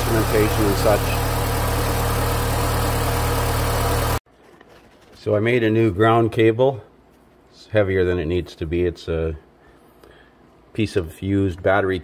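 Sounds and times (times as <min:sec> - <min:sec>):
car engine idling: 0:00.0 - 0:04.2.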